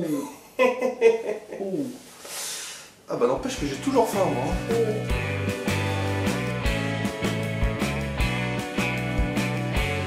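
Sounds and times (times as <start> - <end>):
hissing breath through teeth: 2.1 - 3.0.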